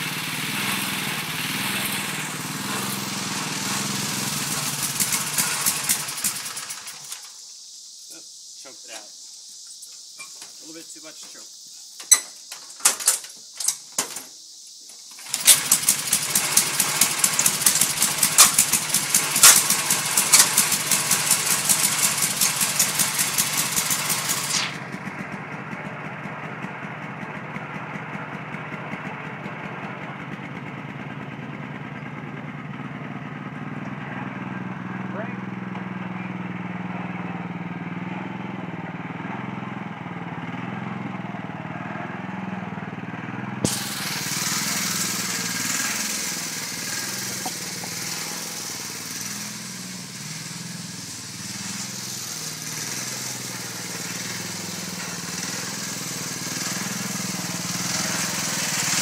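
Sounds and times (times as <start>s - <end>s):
mower engine running: 0.0s - 7.4s, 15.0s - 59.0s
starter rope pulls: 0.6s - 7.4s, 15.0s - 24.8s, 43.7s - 59.0s.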